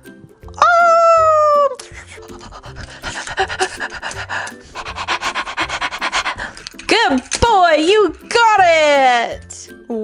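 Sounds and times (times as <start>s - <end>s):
dog-like panting: 1.8s - 8.3s.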